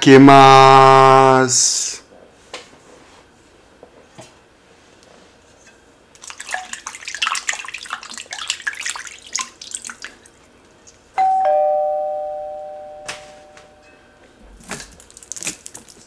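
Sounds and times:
two-note ding-dong chime: 11.2s - 14.2s.

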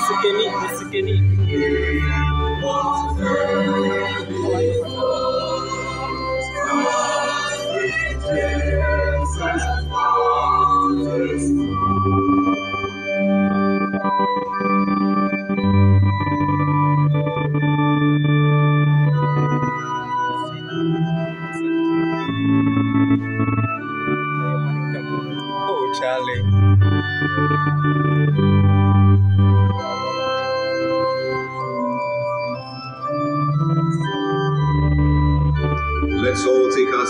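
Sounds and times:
organ playing sustained chords: 0.0s - 37.0s.

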